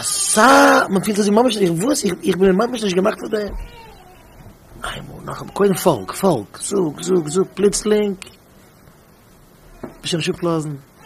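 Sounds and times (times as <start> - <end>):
man talking: 0.0 - 3.7, 4.8 - 8.4, 10.0 - 10.9.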